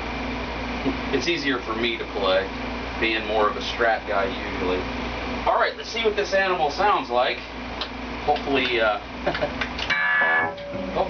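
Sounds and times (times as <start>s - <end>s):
guitar amplifier buzzing: 9.7s - 11.0s.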